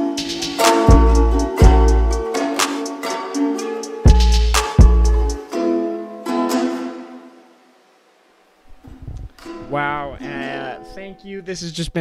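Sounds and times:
plucked-string acoustic chords: 0.0 - 7.6, 9.4 - 11.6
person speaking: 9.0 - 12.0.

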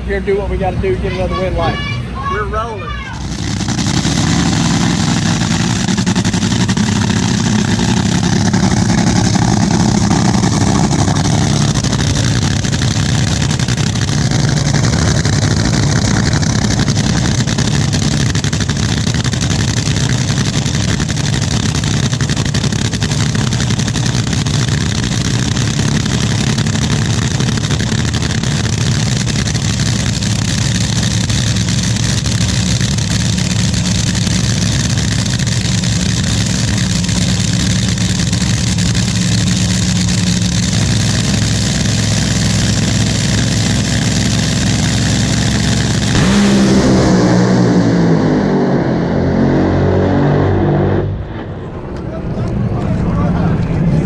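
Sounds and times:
dragster engine idling: 0.0 - 48.6.

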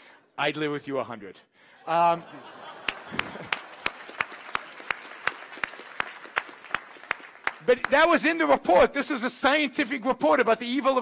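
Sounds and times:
audience applauding: 2.4 - 8.5
person clapping near microphone: 2.9 - 8.1.

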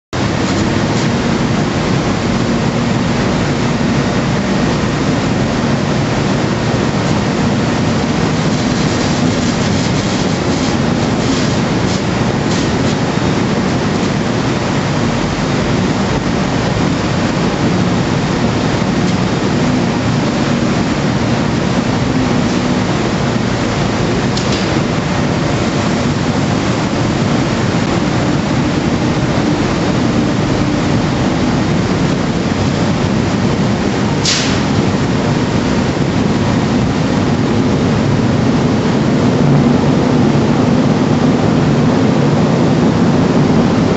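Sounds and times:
loud machinery running: 0.0 - 43.9
low hum: 0.1 - 43.9.

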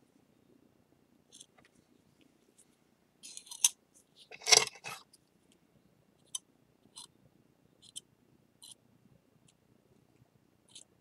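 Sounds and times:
spatula scraping ceramic: 4.3 - 5.0.

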